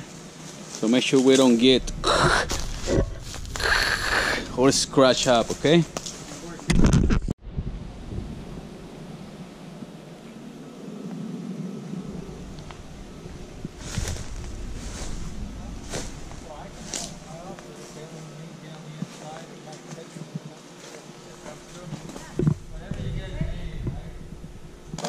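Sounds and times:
faint outdoor background noise: 0:00.0 - 0:25.0
loud low rumble: 0:01.6 - 0:06.0, 0:07.4 - 0:18.1, 0:22.4 - 0:24.9
faint voices: 0:15.4 - 0:24.3.

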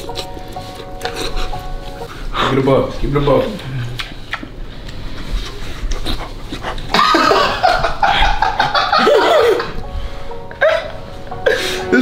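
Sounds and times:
background music: 0:00.0 - 0:03.6, 0:07.0 - 0:12.0
men laughing: 0:06.9 - 0:09.8.

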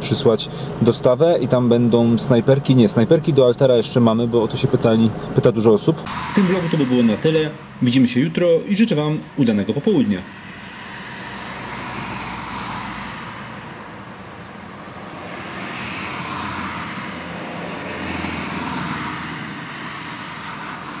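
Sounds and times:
cars passing by: 0:00.0 - 0:21.0.

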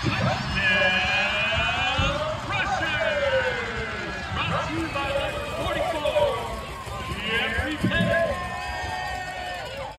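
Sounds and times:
voices talking and shouting: 0:00.0 - 0:09.9.

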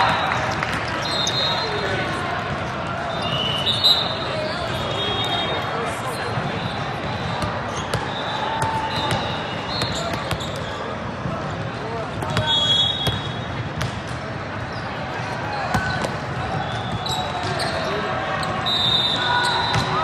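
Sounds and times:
referee's whistle: 0:01.0 - 0:02.0, 0:03.1 - 0:05.8, 0:06.4 - 0:10.8, 0:12.3 - 0:13.5, 0:16.5 - 0:17.9, 0:18.5 - 0:20.0.

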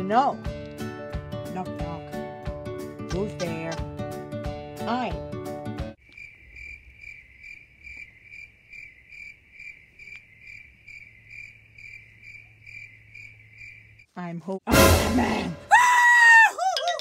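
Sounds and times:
music: 0:00.0 - 0:06.0, 0:14.7 - 0:15.7
voice: 0:03.1 - 0:03.8, 0:14.2 - 0:15.6
crickets chirping: 0:06.0 - 0:14.2.

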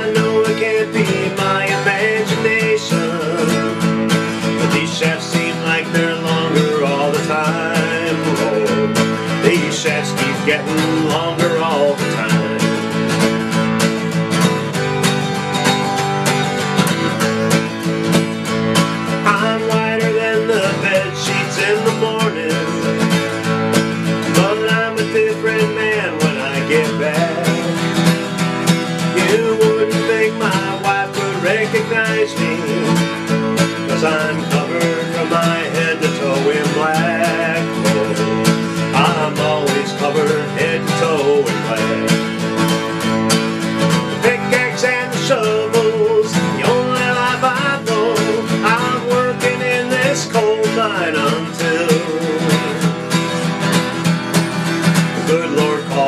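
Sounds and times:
man singing: 0:00.0 - 0:13.7, 0:18.8 - 0:56.0
acoustic guitar folk music: 0:00.0 - 0:56.0.

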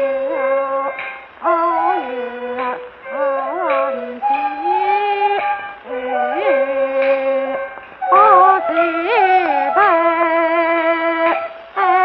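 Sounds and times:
instrumental accompaniment: 0:00.0 - 0:12.0
opera singing on old recording: 0:00.0 - 0:12.0.

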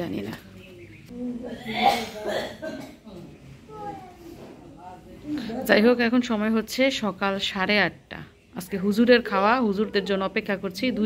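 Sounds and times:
person coughing: 0:01.5 - 0:03.1.

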